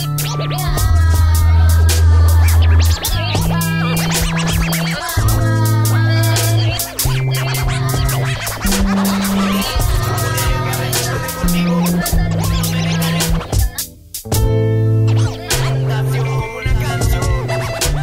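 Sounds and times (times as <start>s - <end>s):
turntable scratches: 0.0s - 13.9s, 15.1s - 18.0s
steady drum pattern: 0.0s - 14.7s, 15.3s - 18.0s
deep bassline: 0.0s - 18.0s.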